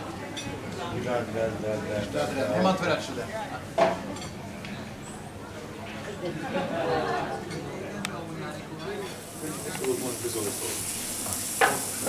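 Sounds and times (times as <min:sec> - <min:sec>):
voices talking: 0:05.2 - 0:12.0
sausages sizzling on hot metal: 0:09.1 - 0:12.0.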